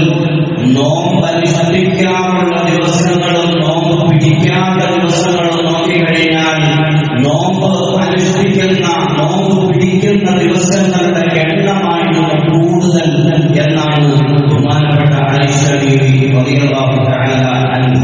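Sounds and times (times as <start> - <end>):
man chanting long notes: 0.0 - 18.0.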